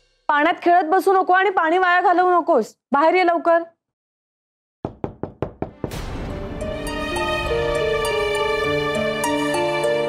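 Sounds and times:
rapid knocking on door: 4.8 - 6.0
background music: 5.7 - 10.0.

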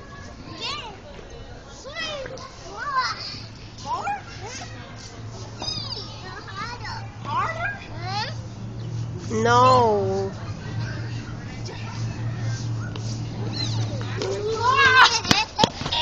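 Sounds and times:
children squealing and calling: 1.7 - 8.6, 9.5 - 16.0.

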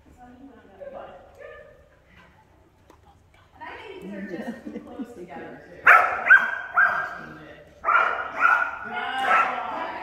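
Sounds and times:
dog barking: 5.9 - 7.2, 7.8 - 9.6.

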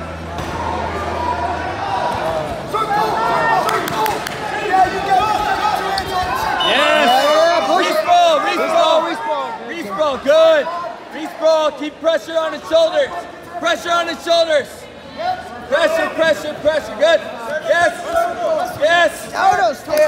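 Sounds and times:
people yelling and cheering: 0.0 - 16.8.

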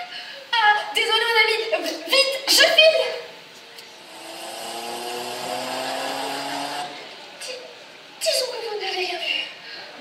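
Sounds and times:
electronic held tones sliding down: 4.0 - 7.1.

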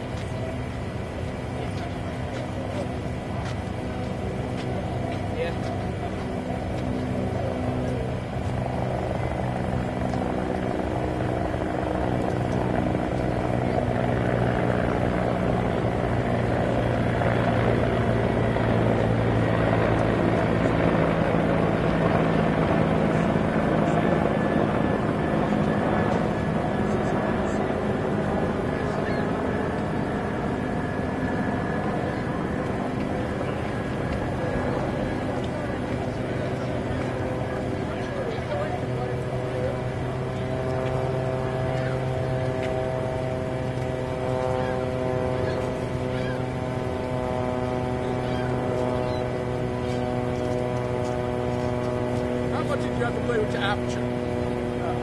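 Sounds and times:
broad rushing noise: 0.0 - 55.0
engine drone: 0.0 - 55.0.

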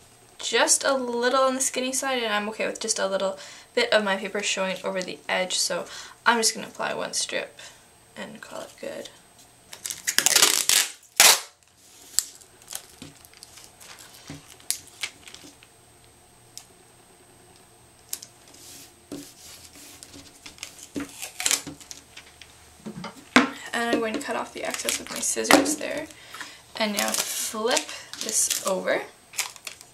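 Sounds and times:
tape snapping: 9.7 - 11.6
tape ripping off roll: 9.7 - 15.7, 18.1 - 22.3, 26.9 - 29.9.

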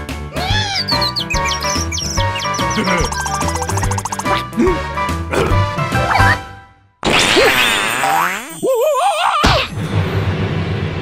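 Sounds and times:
cartoon character quavering cry: 0.4 - 1.0.

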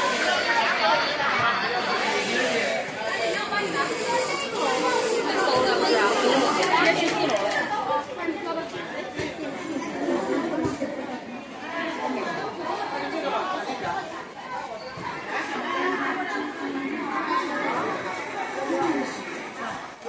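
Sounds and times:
indistinct chatter in echoing hall: 0.0 - 20.0.

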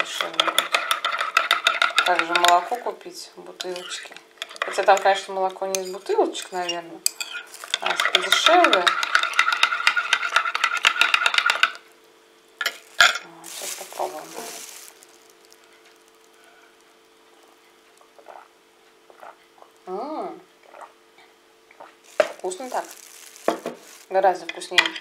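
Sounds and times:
spoon stirring in a ceramic mug: 0.0 - 2.8, 3.6 - 11.8.

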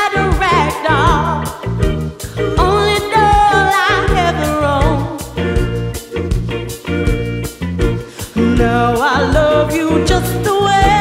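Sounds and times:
women singing: 0.0 - 5.4, 8.2 - 11.0
soul band playing: 0.0 - 11.0.

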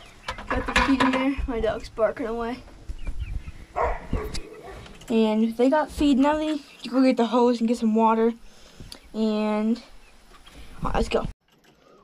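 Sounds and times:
dog barking: 3.8 - 4.9.

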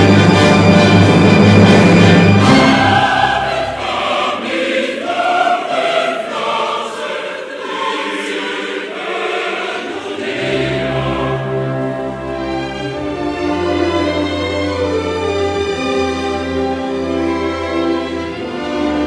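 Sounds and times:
choir singing: 0.0 - 19.0
low orchestral passage: 0.0 - 19.0.

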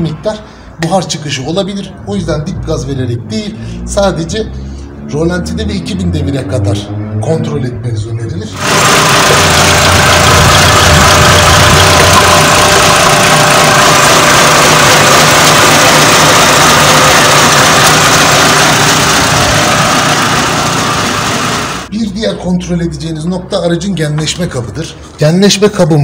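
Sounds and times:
low engine hum: 8.6 - 21.9
petrol engine running: 8.6 - 21.9.

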